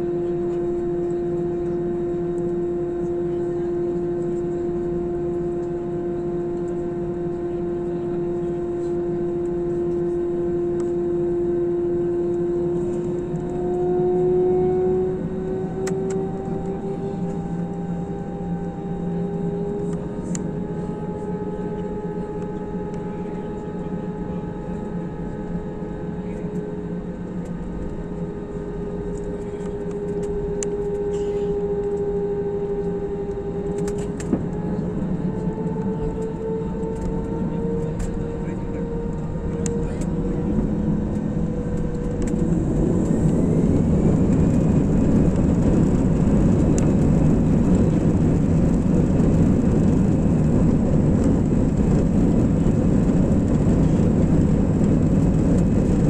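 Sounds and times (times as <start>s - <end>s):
jet engines whining: 0.0s - 56.0s.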